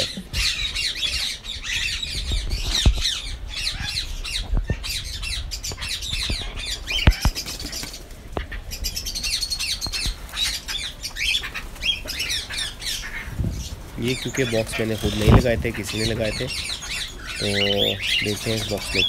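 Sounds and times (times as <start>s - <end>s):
cockatiels squawking and chattering: 0.0s - 19.0s.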